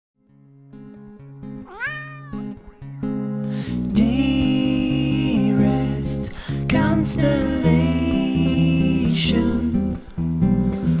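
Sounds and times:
cat meowing: 1.7s - 2.6s.

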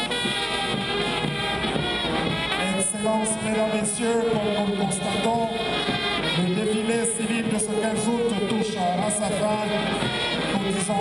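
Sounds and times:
marching brass band playing: 0.0s - 11.0s.

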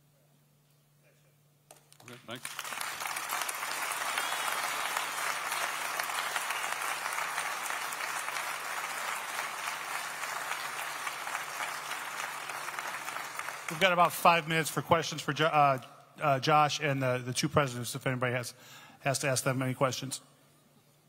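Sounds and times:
crowd applauding: 2.0s - 14.8s.

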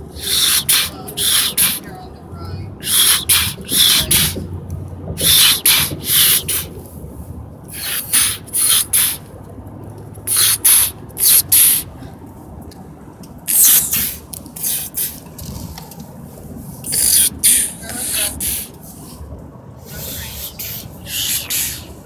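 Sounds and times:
short sharp hissing bursts: 0.0s - 1.8s, 2.8s - 4.4s, 5.2s - 6.7s, 7.7s - 9.2s, 10.3s - 11.9s, 13.5s - 15.2s, 16.8s - 18.8s, 19.9s - 22.0s.

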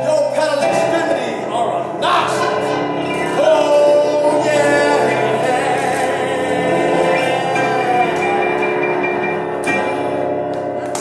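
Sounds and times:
keyboard sustained chord: 0.0s - 11.0s.

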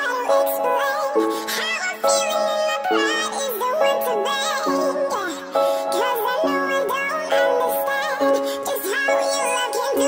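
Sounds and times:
person singing wavering melody: 0.0s - 10.0s.

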